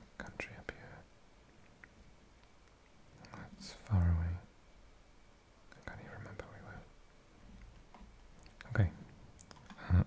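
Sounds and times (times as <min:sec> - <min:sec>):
man whispering: 0:00.0 - 0:01.1, 0:03.2 - 0:04.5, 0:05.7 - 0:07.0, 0:08.5 - 0:10.0
man humming softly: 0:09.7 - 0:10.0.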